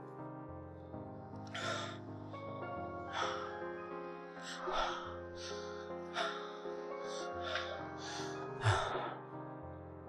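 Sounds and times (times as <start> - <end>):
man gasping breaths: 4.5 - 9.3.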